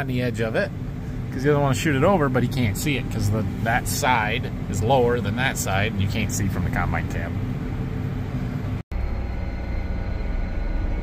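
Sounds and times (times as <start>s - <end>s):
tractor engine drone: 0.0s - 11.0s.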